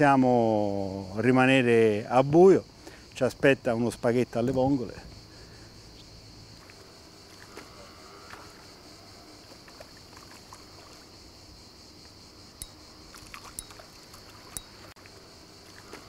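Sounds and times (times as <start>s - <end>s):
faint high-pitched insect hum: 0.0s - 16.0s
faint fish splashes: 6.5s - 16.0s.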